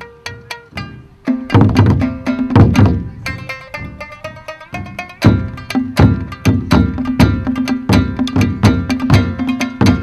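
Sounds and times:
shamisen twanging notes: 0.0s - 10.0s
low taiko drum strikes: 0.2s - 10.0s.

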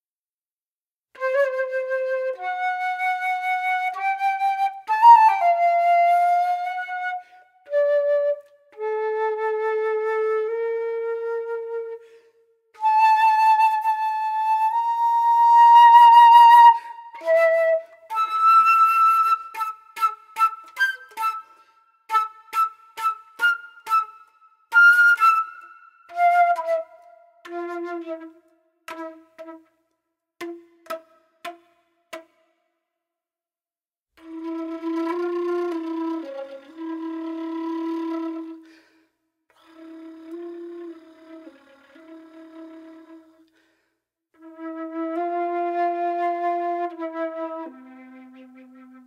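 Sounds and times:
solo flute playing: 1.2s - 31.0s, 34.2s - 43.6s, 44.4s - 49.0s.

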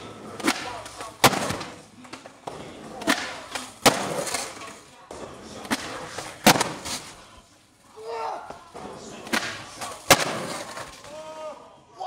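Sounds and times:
skateboard hitting concrete: 0.0s - 7.2s, 8.0s - 11.4s.

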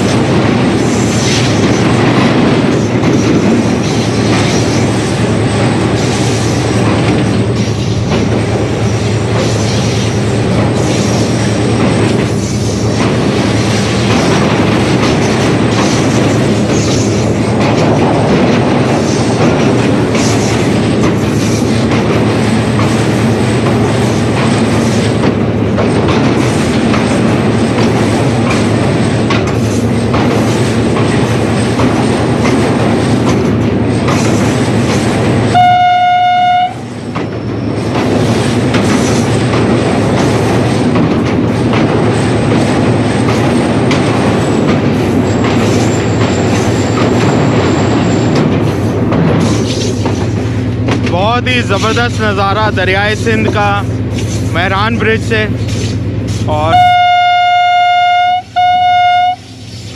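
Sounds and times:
wheels clattering over rails: 0.0s - 35.6s
locomotive running noise: 0.0s - 59.9s
locomotive horn blast: 35.5s - 36.9s, 56.6s - 59.6s.

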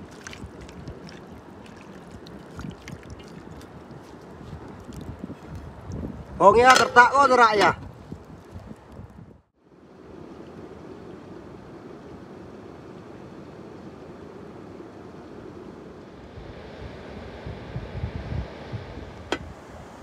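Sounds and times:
wind blowing over microphone: 0.0s - 9.5s, 16.2s - 20.0s.

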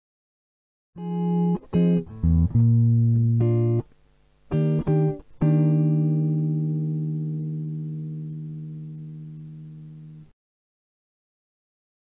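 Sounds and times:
low plucked string note: 2.0s - 3.8s.

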